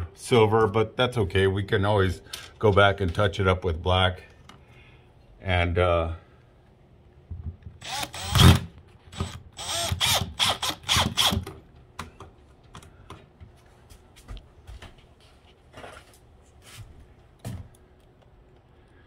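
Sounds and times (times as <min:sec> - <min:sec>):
cordless drill whining: 0:07.8 - 0:11.4.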